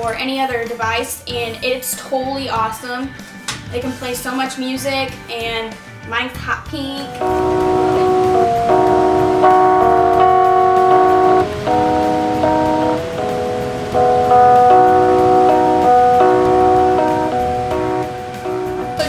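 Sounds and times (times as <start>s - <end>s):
music of held chords from speaker: 0.0s - 19.0s.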